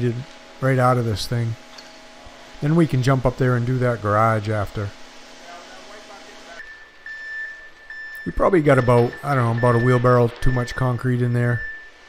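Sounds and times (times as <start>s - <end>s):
steady high tone: 2.6s - 12.0s.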